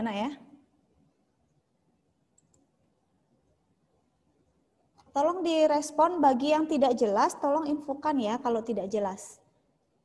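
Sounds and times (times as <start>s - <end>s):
faint clicks: 2.3s - 2.7s.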